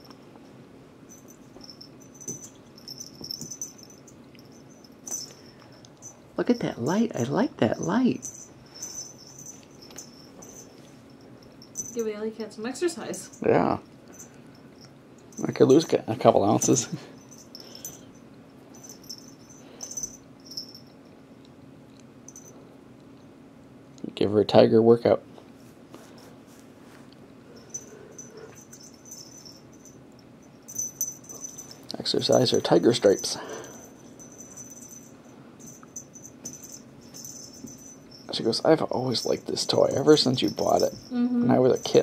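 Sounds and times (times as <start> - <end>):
steady low hum: 0.0 - 42.0
small toy bell jingling: 1.1 - 21.1, 22.3 - 22.6, 27.5 - 42.0.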